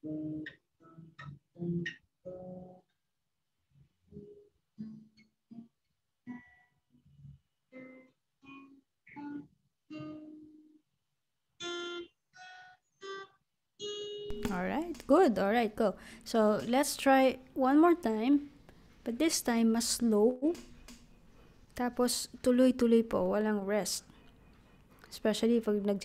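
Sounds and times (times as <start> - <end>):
acoustic guitar plucked notes: 0.0 - 2.9, 4.2 - 10.8, 11.6 - 18.5.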